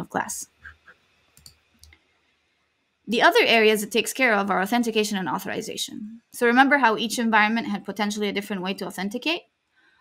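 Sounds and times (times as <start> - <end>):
faint clicks: 1.3 - 2.0.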